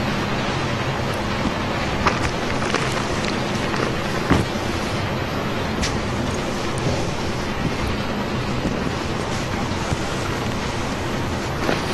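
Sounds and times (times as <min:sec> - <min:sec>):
passenger train running: 0:00.0 - 0:11.9.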